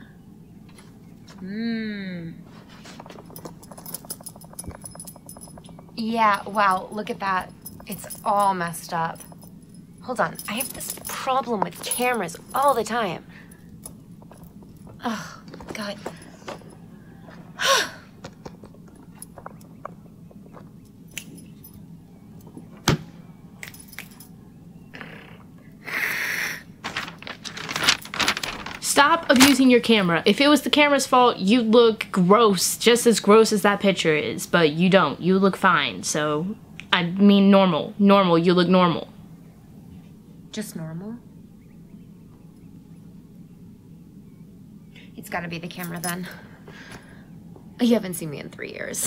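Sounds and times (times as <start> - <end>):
camera being handled and shaken: 2.7 - 6.0, 26.8 - 29.6
camera handling rattle: 26.8 - 29.6.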